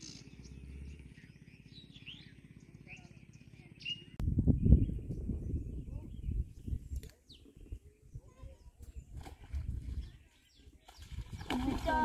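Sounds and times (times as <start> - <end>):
low rumble: 4.1 - 6.9
water splashing: 9.1 - 12.0.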